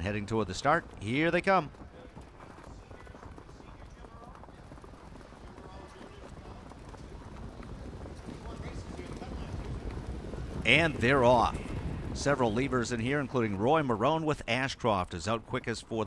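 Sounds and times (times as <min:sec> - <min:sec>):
trotting horse hoofbeats: 0:00.0 - 0:16.0.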